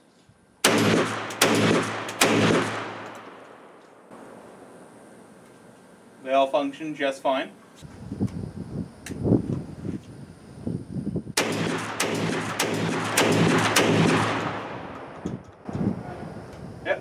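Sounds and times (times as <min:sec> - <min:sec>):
shotgun shots: 0:00.6 - 0:04.4, 0:11.4 - 0:15.3.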